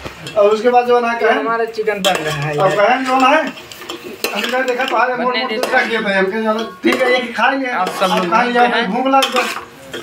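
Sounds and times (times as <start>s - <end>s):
metal ladle scraping a pot: 2.0s - 10.0s.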